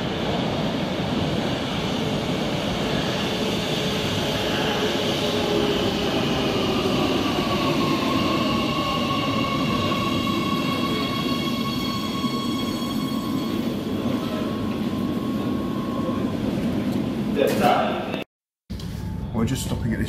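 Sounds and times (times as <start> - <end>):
train wheel and rail rumble: 0.0 - 18.2.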